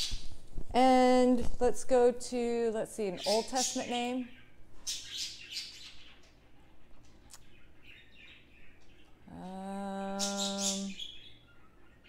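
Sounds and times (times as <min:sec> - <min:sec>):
small bird chirping: 0:03.0 - 0:12.0.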